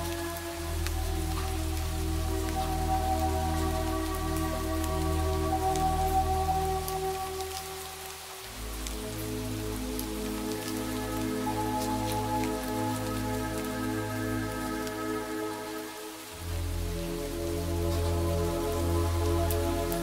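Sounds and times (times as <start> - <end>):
ambient music of held chords: 0.0 - 20.0
rain falling: 0.0 - 20.0.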